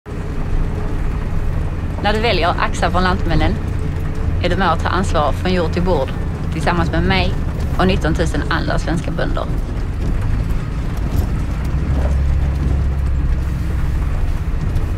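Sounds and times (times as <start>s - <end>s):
low engine-like rumble: 0.1s - 14.9s.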